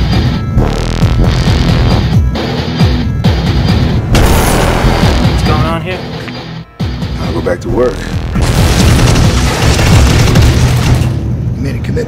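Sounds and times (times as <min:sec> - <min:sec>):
music: 0:00.0 - 0:12.0
loud rushing boom: 0:04.0 - 0:05.4.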